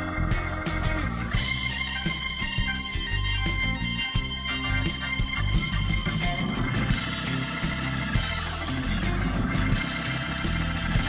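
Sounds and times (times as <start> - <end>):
bass: 0.0 - 11.0
drums: 0.0 - 11.0
electric guitar: 0.0 - 11.0
keyboards: 0.0 - 11.0.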